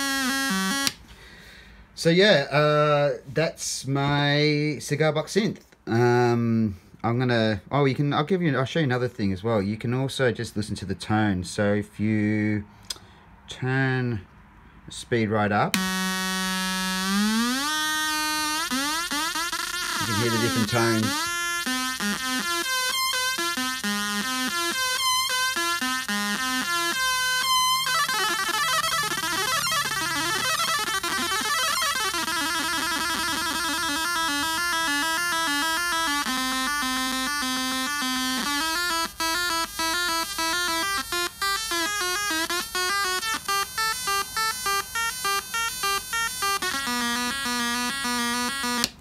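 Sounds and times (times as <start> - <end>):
buzzy electronic synth tones: 0.0 - 1.0, 15.8 - 49.0.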